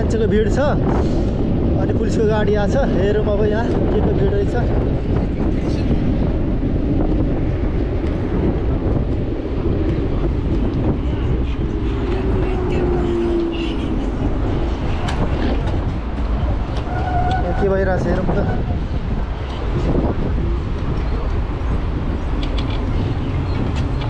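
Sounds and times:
low road rumble: 0.0s - 24.0s
wind on microphone: 0.0s - 24.0s.

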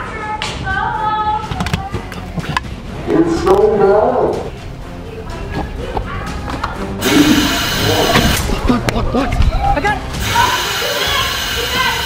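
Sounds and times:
quiet background music: 0.0s - 11.7s.

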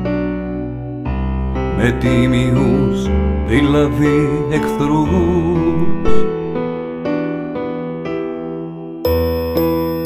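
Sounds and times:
piano chords: 0.0s - 10.0s
person singing: 1.6s - 6.6s.

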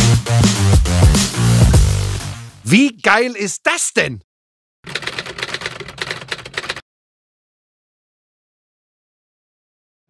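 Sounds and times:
typewriter key clacks: 4.9s - 6.8s.

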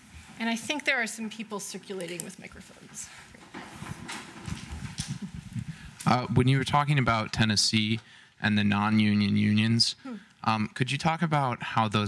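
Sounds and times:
microphone handling rustling: 3.3s - 6.2s.

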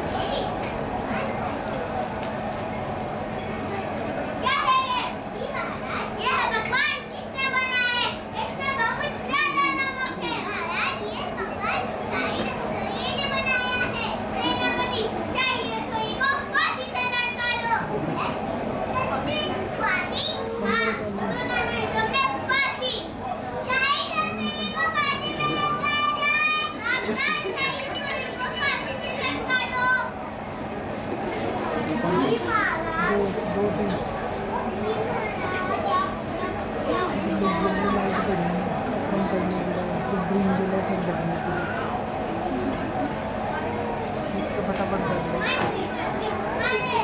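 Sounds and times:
children calling out: 23.7s - 30.3s, 45.3s - 47.0s.

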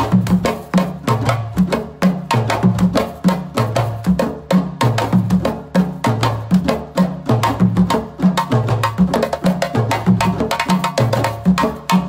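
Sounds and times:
djembe hand drums playing: 0.0s - 12.0s.

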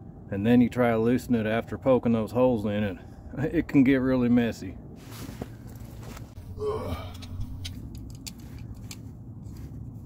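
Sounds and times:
person effort grunt: 6.4s - 7.6s.

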